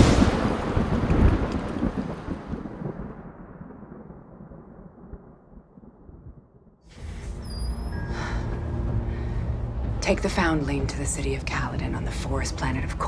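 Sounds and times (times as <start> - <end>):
explosion rumble: 0.0 - 7.4.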